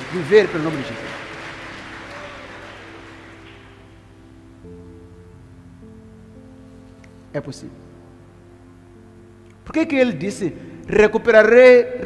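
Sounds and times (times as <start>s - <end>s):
crowd applause: 0.0s - 4.1s
soft sustained music chords: 0.0s - 12.0s.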